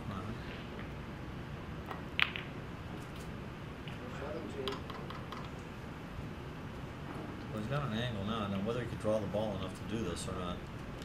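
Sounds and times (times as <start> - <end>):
balls knocking together: 1.9 - 2.6
cue tip striking ball: 1.9 - 2.6.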